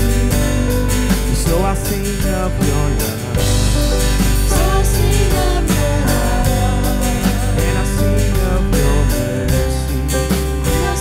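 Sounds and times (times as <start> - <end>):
acoustic guitar: 0.0 - 11.0
drums: 0.0 - 11.0
keyboards: 0.0 - 11.0
person singing slow melody: 0.0 - 11.0
piano: 0.0 - 11.0.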